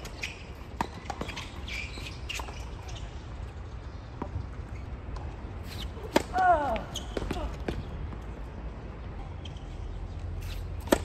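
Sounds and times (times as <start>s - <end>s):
racket hitting ball: 10.8s - 11.0s.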